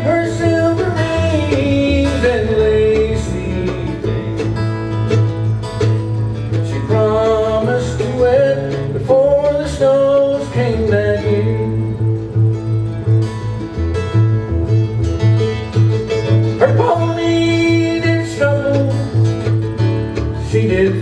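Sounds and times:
acoustic guitar: 0.0 - 21.0
mandolin: 0.0 - 21.0
plucked upright bass: 0.0 - 21.0.

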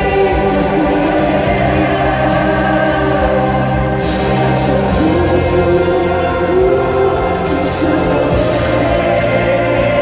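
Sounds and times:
choir singing sustained notes: 0.0 - 10.0
string orchestra: 0.0 - 10.0.

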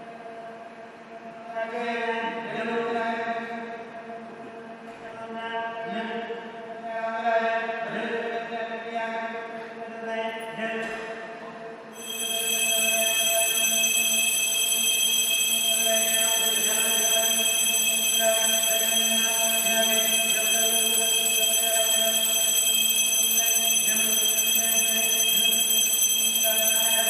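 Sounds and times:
metal temple bells ringing: 12.0 - 27.0.

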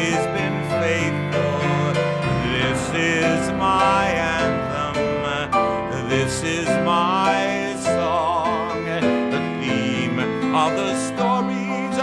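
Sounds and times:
man singing: 0.0 - 12.0
piano accompaniment: 0.0 - 12.0.

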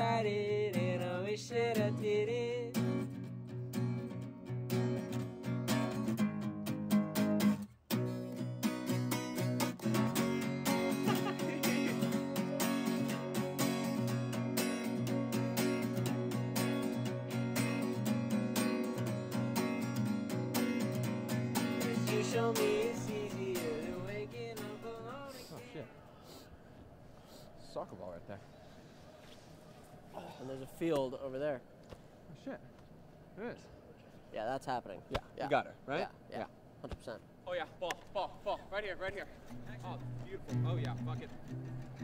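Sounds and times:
person singing: 0.0 - 2.8, 10.2 - 16.0, 21.5 - 25.9
strummed acoustic guitar: 0.0 - 25.7, 39.4 - 42.0.

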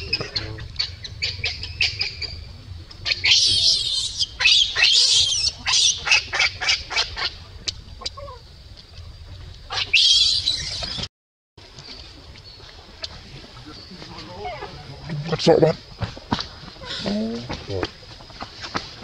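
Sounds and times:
baby monkey squealing: 3.0 - 6.8, 9.7 - 11.1.

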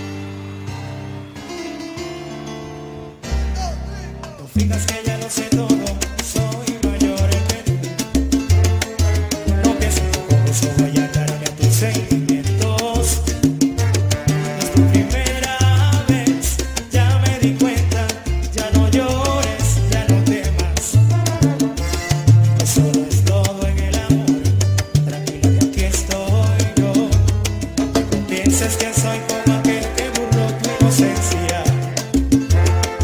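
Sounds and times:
instrumental salsa music: 0.0 - 33.0.

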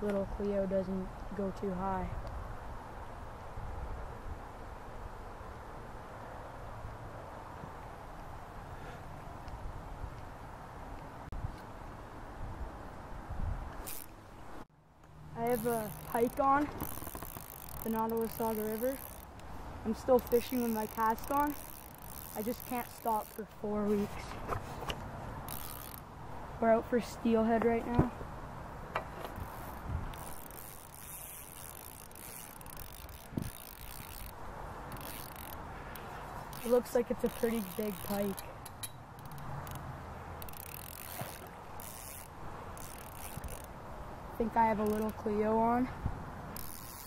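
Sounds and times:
fishing reel cranking: 13.8 - 14.2, 15.4 - 23.6, 25.5 - 26.1, 29.3 - 39.8, 40.4 - 43.8, 44.7 - 45.2, 46.5 - 47.0
brief rustle: 23.8 - 26.0.

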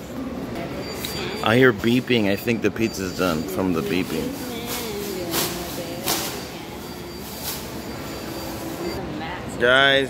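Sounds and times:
murmur of voices: 0.0 - 10.0.

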